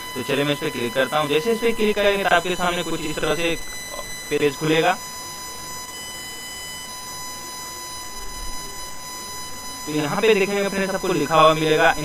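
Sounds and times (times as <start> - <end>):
thin electrical whine: 0.0 - 12.0.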